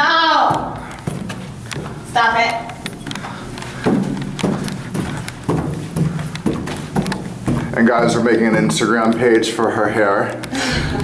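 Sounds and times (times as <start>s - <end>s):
footsteps climbing stairs: 0.0s - 11.0s.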